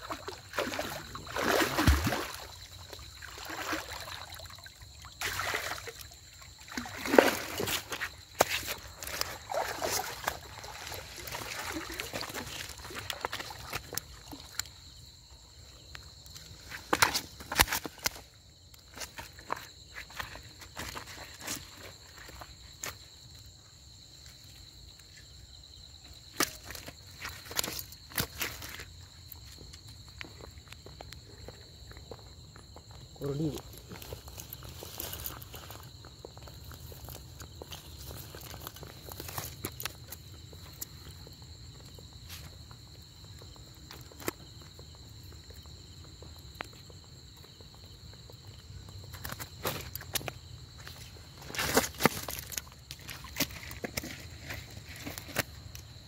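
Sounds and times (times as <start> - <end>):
water sloshing and splashing: 0.0 - 15.0, 16.2 - 23.0, 26.3 - 32.9, 33.5 - 42.5, 49.1 - 55.9
wet net slapping on stone: 0.5 - 2.5.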